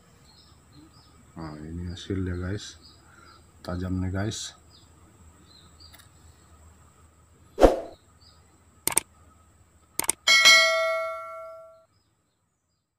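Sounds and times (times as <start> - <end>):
light metallic clicks: 8.9 - 9.1, 10.0 - 10.2
steel blade ringing: 10.3 - 11.8.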